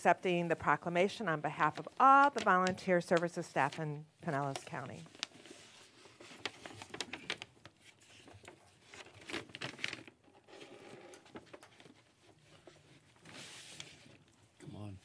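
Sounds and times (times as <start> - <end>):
rustling of people moving: 0.0 - 15.0.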